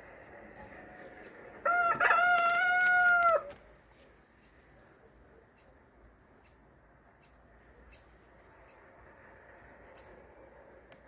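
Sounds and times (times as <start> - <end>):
rooster crowing: 1.6 - 3.6.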